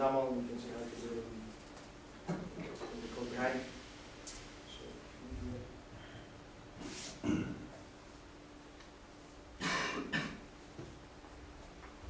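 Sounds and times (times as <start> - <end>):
person coughing: 7.2 - 7.7, 9.6 - 10.4.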